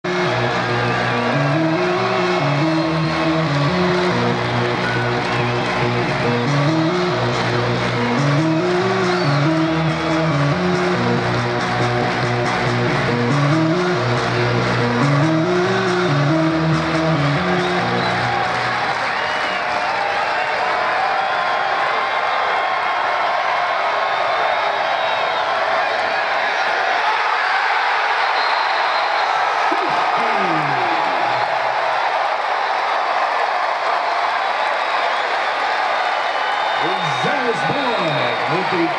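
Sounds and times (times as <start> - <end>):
stadium crowd noise: 0.0 - 38.9
music with repeating bass riff: 0.1 - 18.4.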